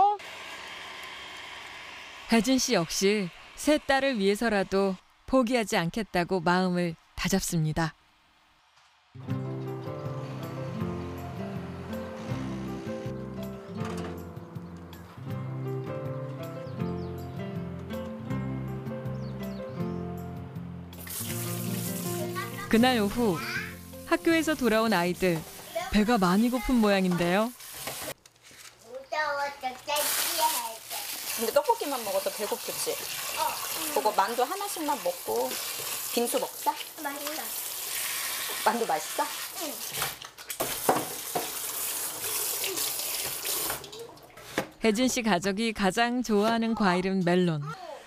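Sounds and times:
soft background music: 9.2 - 26.9
running water from tap: 21.0 - 28.2, 29.9 - 44.4
child vocal sounds: 23.4 - 23.8, 33.4 - 34.0, 42.6 - 43.0, 47.6 - 48.0.

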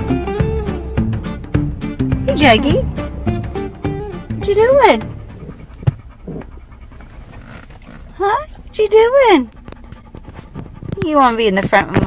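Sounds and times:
car cabin hum: 0.8 - 12.0
dog panting: 0.8 - 12.0.

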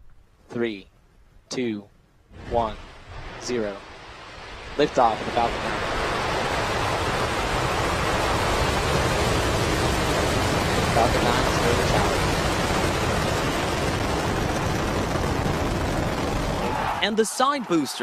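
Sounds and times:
rocket engines rumbling: 2.4 - 18.0.

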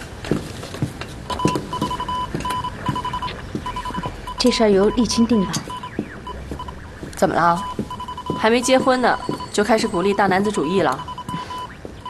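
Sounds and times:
morse code beeps: 1.3 - 12.0.

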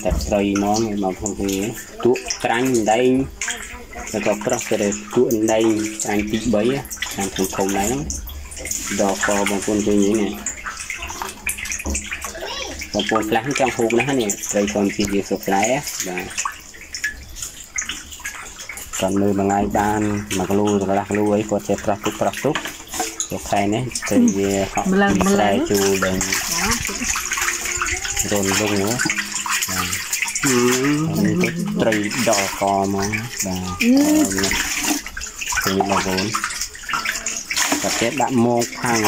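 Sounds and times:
water splashing with fish: 0.0 - 39.0.

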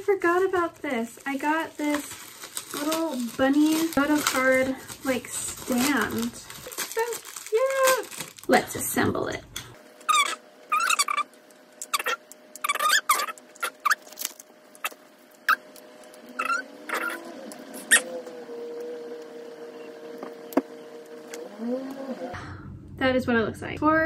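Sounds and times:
plastic squeaks: 10.0 - 19.0.

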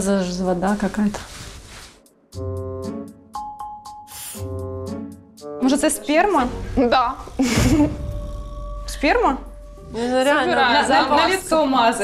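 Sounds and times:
keyboard chords over bass: 7.4 - 10.5.

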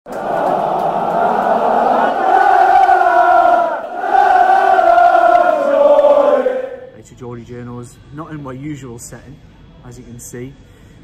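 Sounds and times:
stadium crowd singing a chant: 0.1 - 6.9.

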